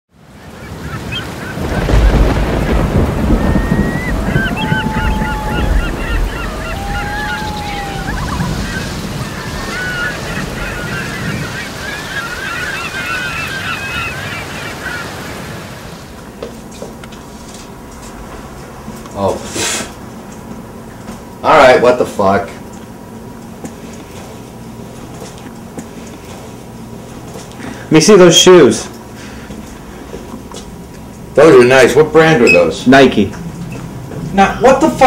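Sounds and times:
many birds calling: 0.2s - 16.6s, 30.8s - 35.0s
deep rumble: 1.6s - 9.7s.

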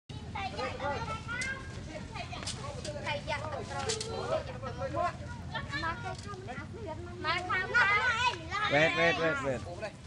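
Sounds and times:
children talking and calling out: 0.1s - 10.0s.

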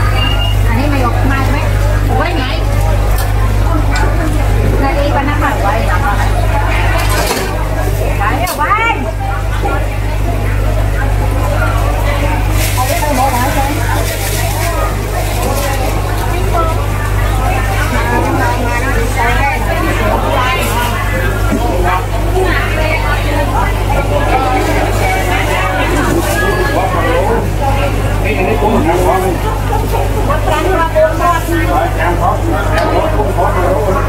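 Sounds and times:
bubbling seafood tanks: 0.0s - 34.0s
people talking: 0.0s - 34.0s
steady low hum: 0.0s - 34.0s
water splashing into plastic bag: 12.3s - 16.6s.

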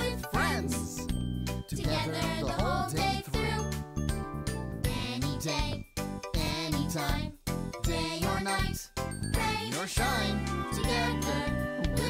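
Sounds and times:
children's sing-along song: 0.0s - 12.0s.

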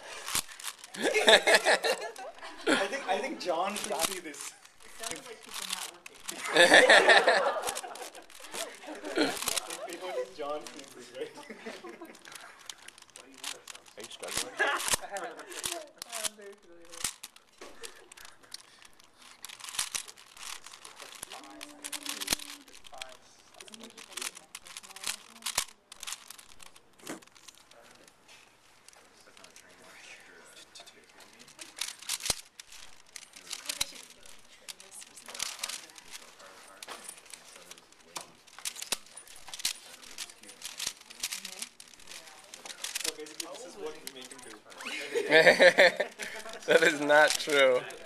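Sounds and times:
puzzle cube clicking and rattling: 0.0s - 28.2s, 28.8s - 48.0s.

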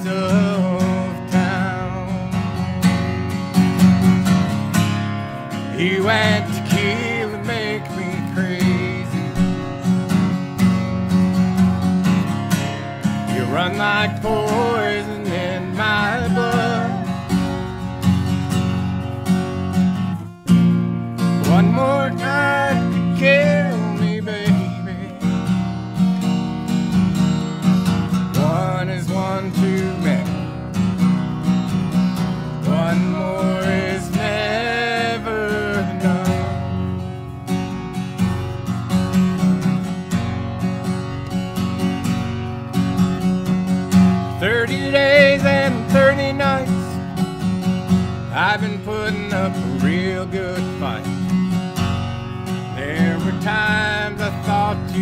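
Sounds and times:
person singing: 0.0s - 2.4s, 5.7s - 10.0s, 13.3s - 17.6s, 21.4s - 25.4s, 28.3s - 30.4s, 32.6s - 36.7s, 44.4s - 47.0s, 48.3s - 51.1s, 52.7s - 55.0s
acoustic guitar strummed: 0.0s - 55.0s.

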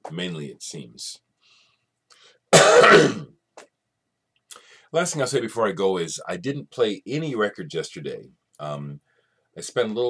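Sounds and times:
man coughing loudly: 2.5s - 3.4s.

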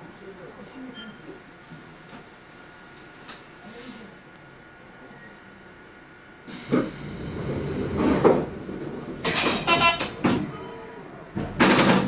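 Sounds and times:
air hiss burst: 6.5s - 7.3s
short buzzing tone: 9.6s - 10.2s.

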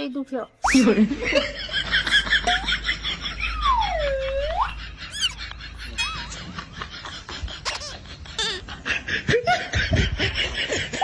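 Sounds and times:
comic sliding whistle effect: 0.6s - 1.0s, 3.4s - 6.2s.

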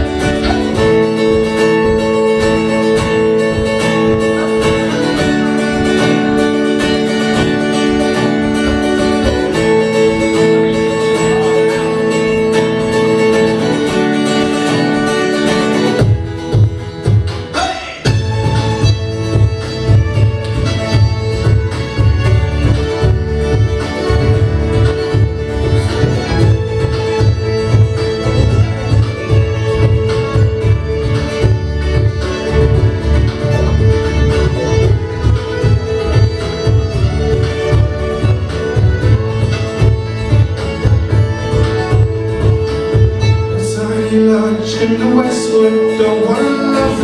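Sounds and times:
banjo: 0.0s - 47.0s
fiddle melody: 0.0s - 47.0s
folk band playing: 0.0s - 47.0s
plucked double bass: 0.0s - 47.0s
strummed acoustic guitar: 0.0s - 47.0s.

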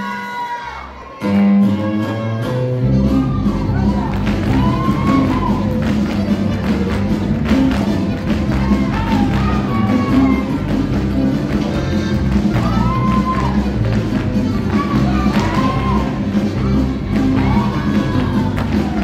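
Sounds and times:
live band playing a polka: 1.6s - 19.0s.

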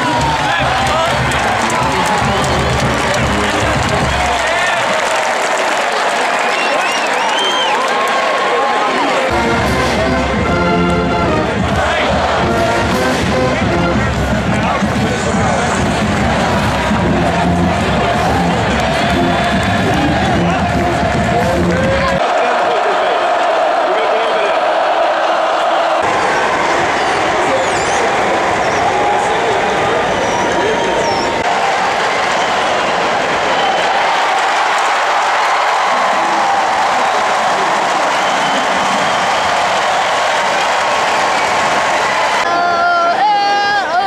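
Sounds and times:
stadium crowd talking and cheering: 0.0s - 44.0s.

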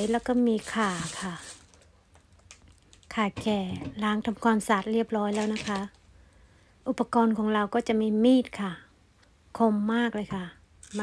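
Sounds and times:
woman speaking: 0.0s - 1.5s, 3.1s - 6.0s, 6.9s - 8.9s, 9.6s - 11.0s.

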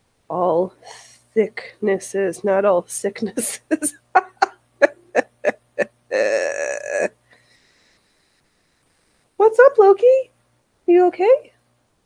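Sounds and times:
woman laughing: 3.4s - 7.1s
wavering vocal sound: 4.2s - 7.2s.

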